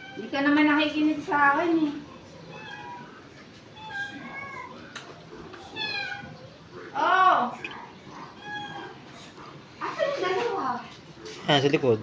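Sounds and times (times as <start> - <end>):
small animal crying: 2.3 - 5.0, 5.6 - 6.5, 8.2 - 9.0.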